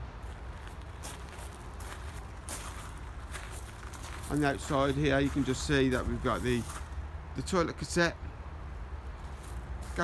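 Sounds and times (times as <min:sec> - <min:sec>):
steady low rumble: 0:00.0 - 0:07.3
footsteps on gravel: 0:00.2 - 0:07.0, 0:09.2 - 0:10.0.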